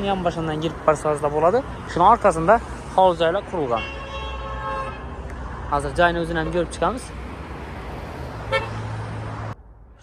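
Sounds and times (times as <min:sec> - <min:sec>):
road traffic noise: 0:00.0 - 0:10.0
car horn toot: 0:03.7 - 0:05.1, 0:08.5 - 0:08.8.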